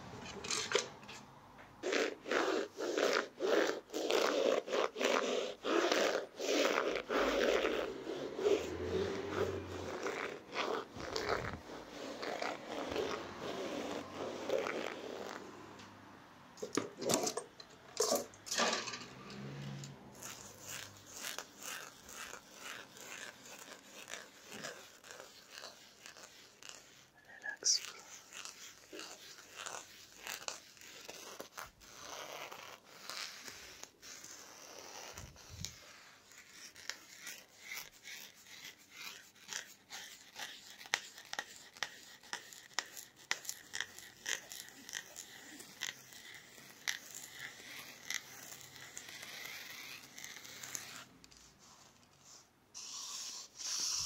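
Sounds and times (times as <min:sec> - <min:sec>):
plastic tool scraping fabric: 0:00.0 - 0:54.0.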